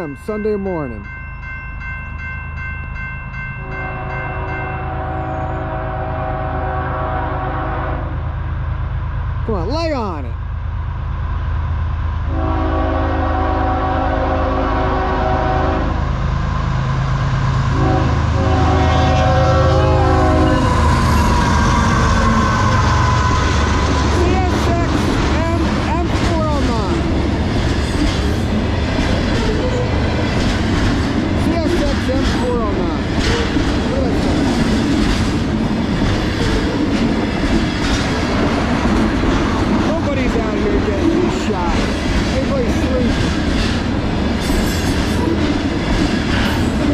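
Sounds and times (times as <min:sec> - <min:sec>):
diesel locomotive drone: 0:00.0 - 0:46.9
locomotive air horn blasts: 0:04.8 - 0:08.2, 0:12.3 - 0:16.0, 0:17.7 - 0:21.4
train wheels clacking on rails: 0:20.9 - 0:46.9.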